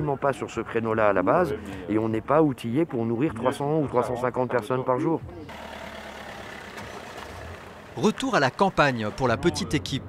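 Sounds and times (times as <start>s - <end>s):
van engine running: 5.5s - 10.0s.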